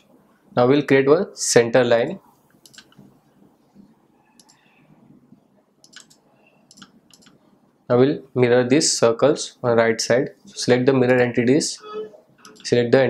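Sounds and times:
computer mouse clicks: 2.5s - 3.1s, 4.4s - 4.6s, 5.8s - 7.4s.

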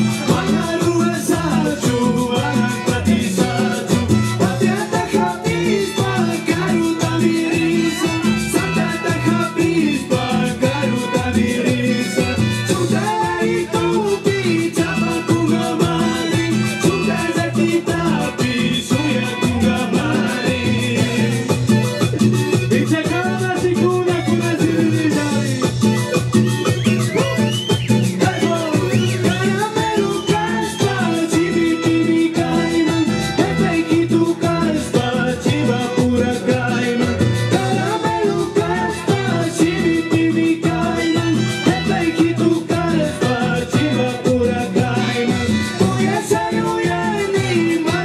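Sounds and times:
live band playing salsa music: 0.0s - 48.0s.

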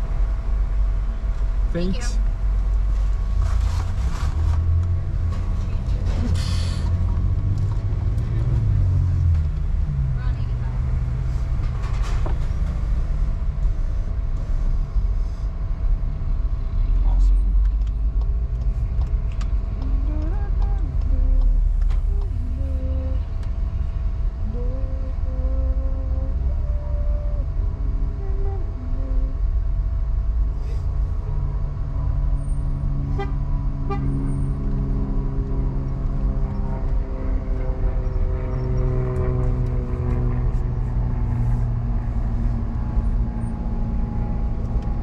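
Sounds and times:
car engine and road rumble: 0.0s - 45.0s.

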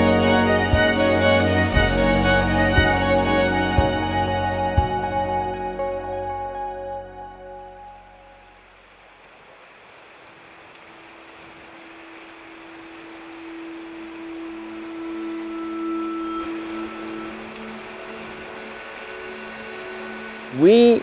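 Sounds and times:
soft long-held music notes: 0.0s - 8.7s, 10.8s - 21.0s
water rushing over rocks: 8.5s - 21.0s.

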